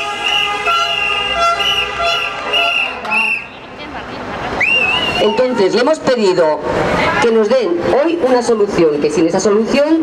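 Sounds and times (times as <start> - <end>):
pulsing high-pitched noisemakers: 0.0 - 3.6.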